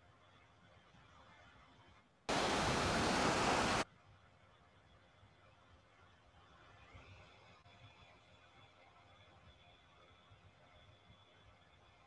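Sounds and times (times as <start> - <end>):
rushing sea noise: 2.3 - 3.8.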